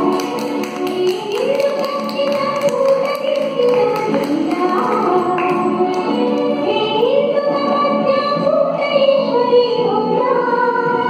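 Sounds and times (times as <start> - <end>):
women singing: 0.0 - 11.0.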